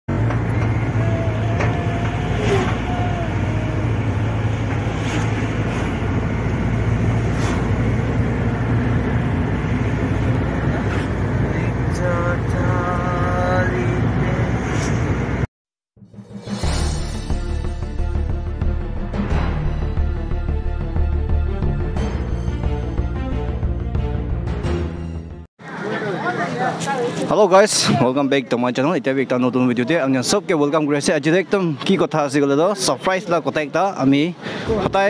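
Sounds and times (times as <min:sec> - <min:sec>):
car road and engine rumble: 0:00.1 - 0:15.5.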